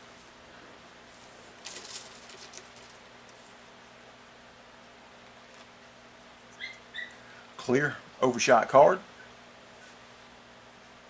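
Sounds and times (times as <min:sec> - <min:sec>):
rattling clatter of small hard pieces: 0:01.6 - 0:03.0.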